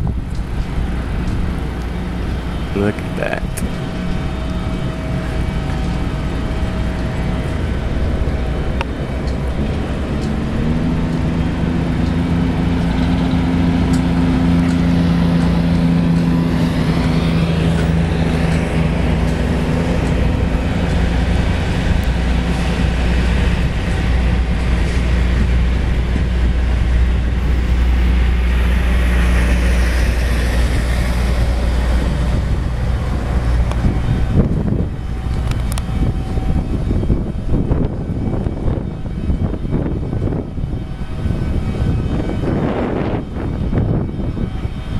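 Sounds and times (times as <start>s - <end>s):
vehicle engine humming: 0.0s - 44.9s
wind rumble on microphone: 0.0s - 44.9s.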